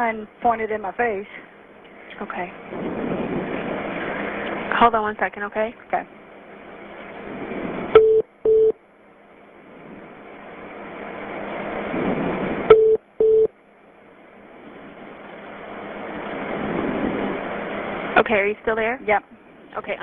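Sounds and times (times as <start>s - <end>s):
line noise hiss: 0.0s - 20.0s
short low telephone beeps: 8.0s - 8.8s, 12.7s - 13.5s.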